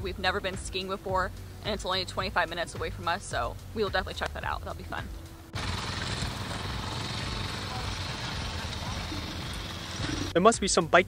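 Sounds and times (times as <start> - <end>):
vehicle engines: 1.3 - 10.4
faint distant voices: 6.7 - 10.3.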